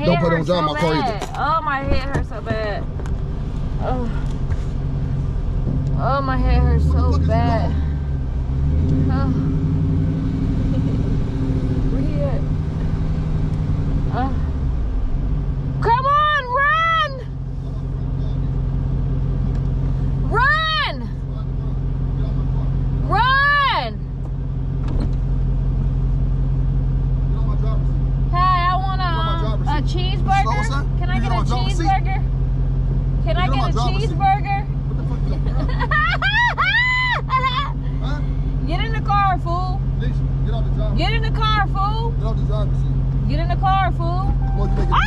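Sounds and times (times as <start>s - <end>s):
car engine and tyres drone: 0.0s - 45.0s
woman making wordless sounds: 5.9s - 7.9s, 9.0s - 9.5s, 28.4s - 32.2s, 33.2s - 34.7s.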